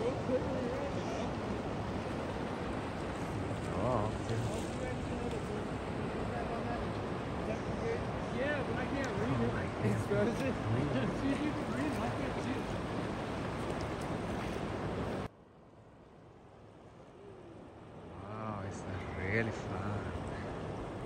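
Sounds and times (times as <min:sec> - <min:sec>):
river rapids rushing: 0:00.0 - 0:15.3.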